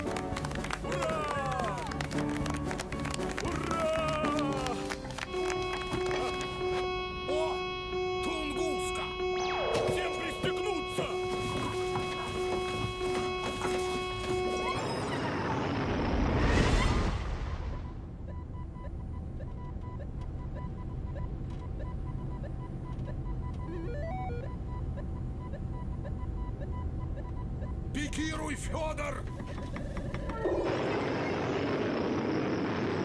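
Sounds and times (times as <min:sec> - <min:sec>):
electronic beeping: 0:05.3 - 0:16.1, 0:17.7 - 0:32.4
computer blips: 0:05.3 - 0:18.0.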